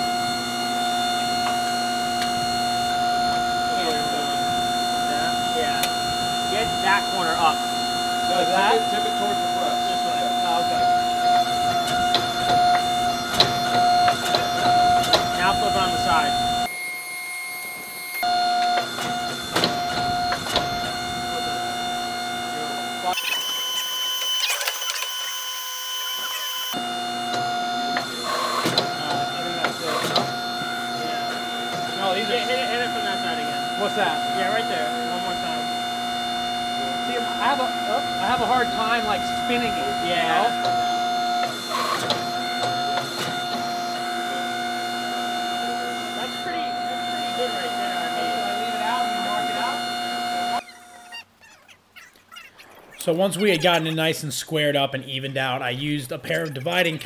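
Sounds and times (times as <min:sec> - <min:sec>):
hydraulic pump humming and whining: 0:00.0 - 0:51.1.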